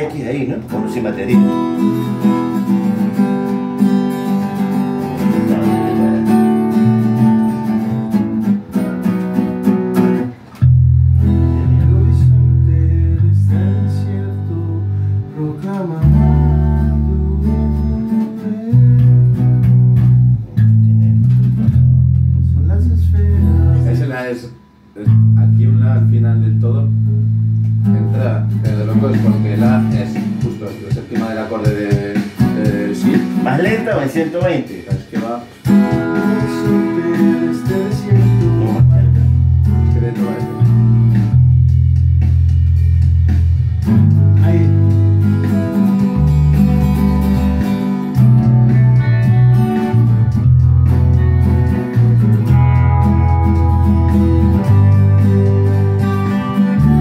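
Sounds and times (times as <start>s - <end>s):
person's voice: 0.0s - 1.6s, 5.1s - 6.6s, 22.4s - 27.0s, 27.9s - 35.6s, 36.2s - 40.7s, 44.4s - 45.2s
electric bass low notes: 0.0s - 34.2s, 35.6s - 57.0s
guitars playing chords: 0.0s - 57.0s.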